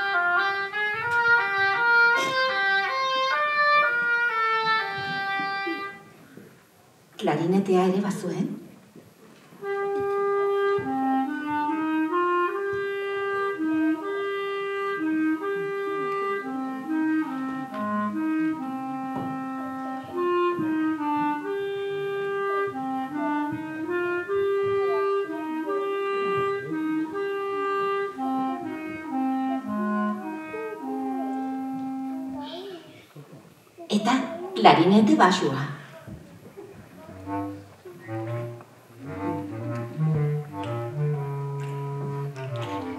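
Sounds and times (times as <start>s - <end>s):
woodwind solo melody: 0.0s - 6.2s, 9.6s - 32.4s, 37.0s - 42.9s.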